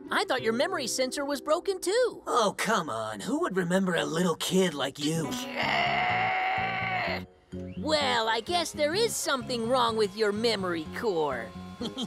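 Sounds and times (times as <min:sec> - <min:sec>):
boy growling angrily: 0:05.3 - 0:07.2.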